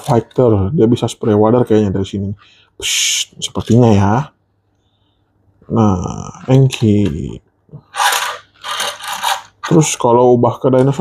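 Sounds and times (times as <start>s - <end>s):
toy wheels rolling on wood: 7.9s - 10.0s.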